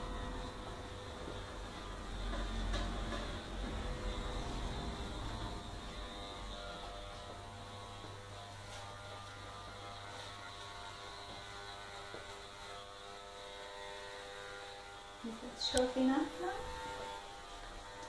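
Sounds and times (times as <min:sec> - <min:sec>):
electric hair clippers buzzing: 0:00.0 - 0:18.0.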